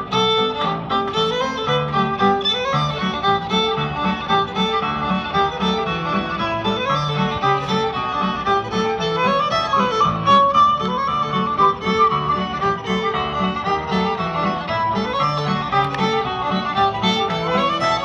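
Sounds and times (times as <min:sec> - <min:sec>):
fiddle melody: 0:00.0 - 0:18.0
guitar accompaniment: 0:00.0 - 0:18.0.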